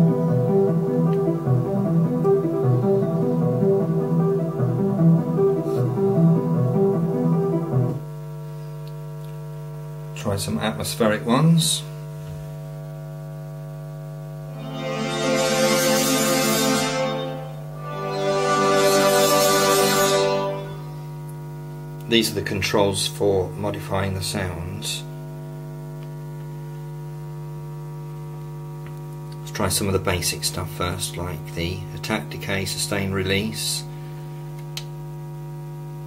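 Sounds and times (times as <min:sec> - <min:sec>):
synthesizer arpeggio of low notes: 0:00.0 - 0:08.1, 0:14.5 - 0:21.1
steady electrical hum: 0:00.0 - 0:36.0.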